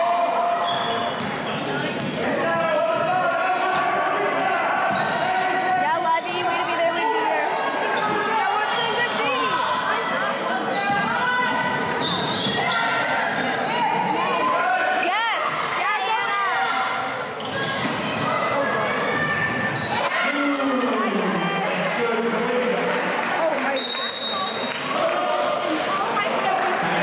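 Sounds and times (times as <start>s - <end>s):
voices of players and spectators: 0.0s - 27.0s
sneakers squeaking: 0.6s - 2.4s, 4.5s - 6.8s, 7.4s - 14.1s, 17.3s - 20.2s
basketball bouncing on wooden court: 10.9s - 11.2s.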